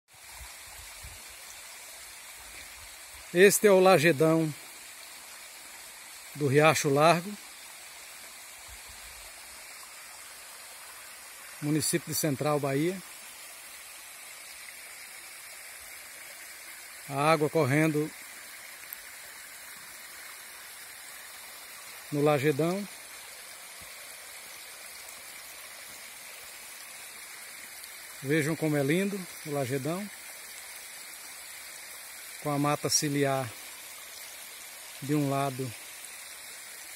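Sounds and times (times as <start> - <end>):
creek water rushing over rock: 0.1 - 36.9.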